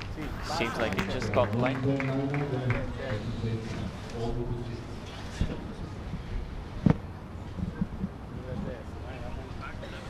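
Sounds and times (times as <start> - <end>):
outdoor field noise: 0.0 - 10.0.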